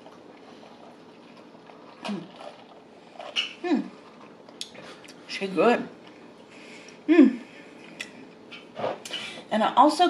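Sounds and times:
woman humming in appreciation: 7.1s - 7.5s.

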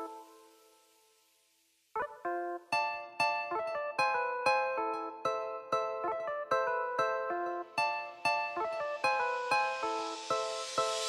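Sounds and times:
dancehall beat with plucked strings: 2.0s - 11.0s.

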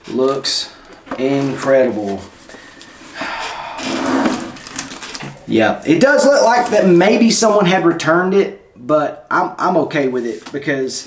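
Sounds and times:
plastic wrapping crinkling: 4.3s - 6.9s.

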